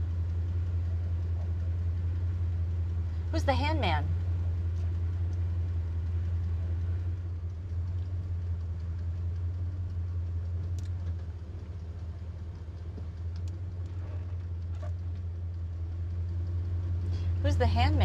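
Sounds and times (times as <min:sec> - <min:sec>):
car engine drone inside cabin: 0:00.0 - 0:18.0.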